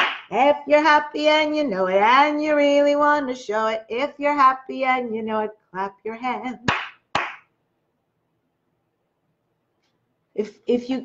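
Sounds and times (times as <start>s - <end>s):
hand clap: 0.0s - 0.4s, 6.6s - 7.5s.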